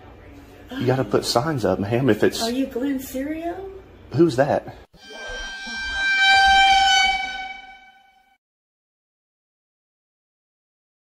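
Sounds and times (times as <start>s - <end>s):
steady horn-like tone: 5.0s - 8.4s.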